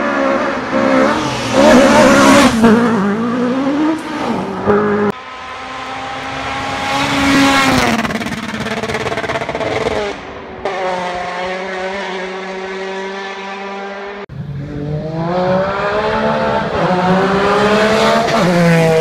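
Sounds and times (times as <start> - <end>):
rally car engines revving: 0.0 - 19.0.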